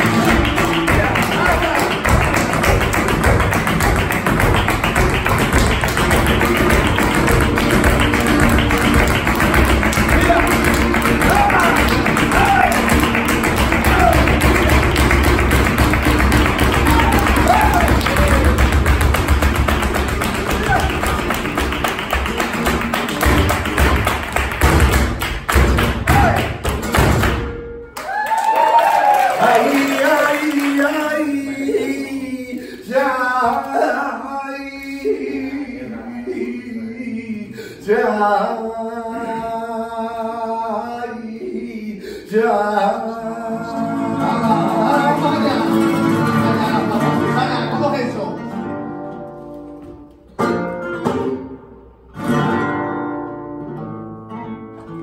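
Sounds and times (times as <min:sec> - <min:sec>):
rapid percussive taps: 0:00.0 - 0:27.6
shoes striking stage: 0:00.0 - 0:27.8
flamenco guitar playing: 0:00.0 - 0:28.0, 0:43.3 - 0:55.0.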